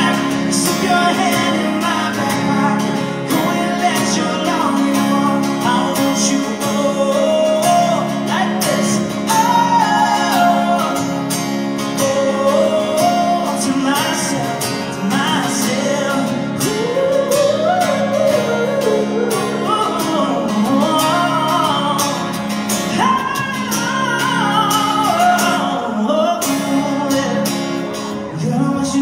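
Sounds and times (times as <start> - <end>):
man singing slow melody: 0.0 - 29.0
strummed acoustic guitar: 0.0 - 29.0.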